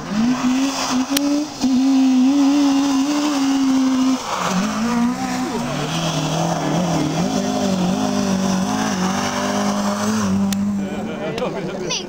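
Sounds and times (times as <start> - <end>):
rally car engine passing: 0.0 - 11.9.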